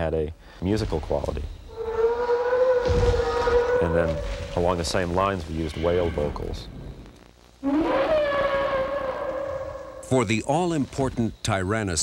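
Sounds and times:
whale call rising in pitch: 1.7s - 4.8s, 7.6s - 10.1s.

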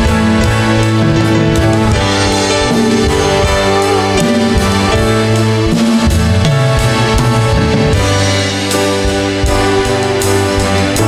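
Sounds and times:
worship band playing slow song: 0.0s - 11.0s.

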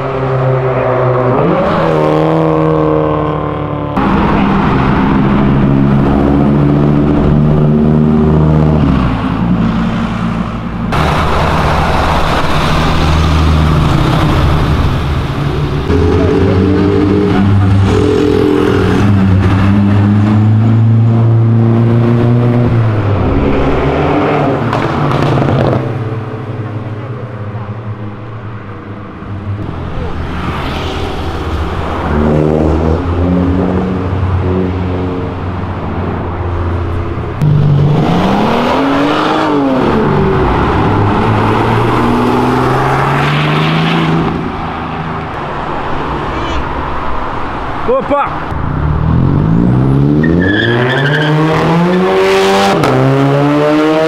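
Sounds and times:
car engines revving: 0.0s - 54.0s
loud engine pitch swooping: 10.8s - 26.6s.

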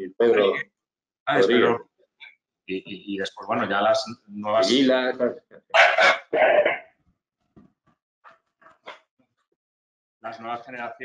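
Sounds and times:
dog barking: 5.8s - 6.3s.

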